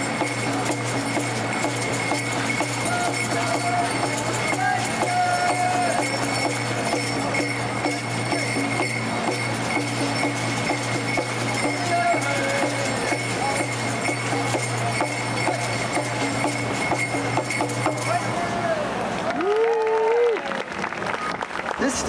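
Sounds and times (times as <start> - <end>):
fast driving percussion beat: 0.0 - 18.7.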